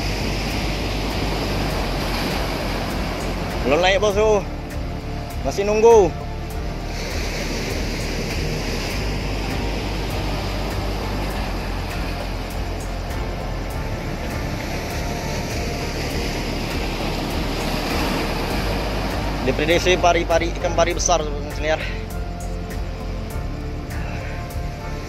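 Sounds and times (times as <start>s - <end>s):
faint music: 0.0s - 25.0s
water at shoreline: 0.0s - 25.0s
wind: 0.0s - 25.0s.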